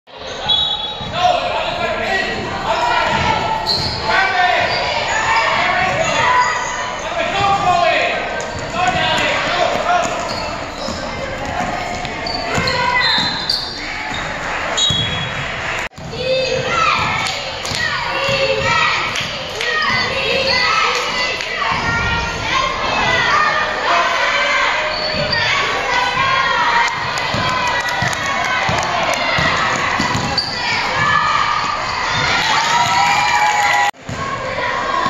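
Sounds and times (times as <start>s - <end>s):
basketball bouncing on gym floor: 3.1s - 4.0s, 8.5s - 13.5s, 27.0s - 31.2s.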